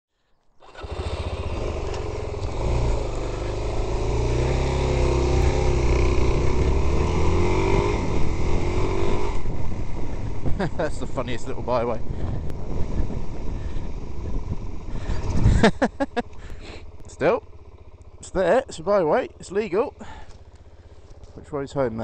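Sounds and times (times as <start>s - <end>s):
motorcycle engine riding: 0.6s - 22.0s.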